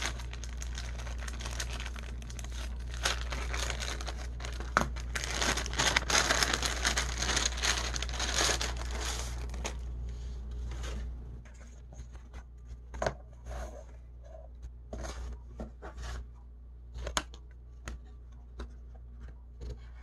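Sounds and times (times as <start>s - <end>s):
paper sleeve crinkling: 0.0s - 9.9s.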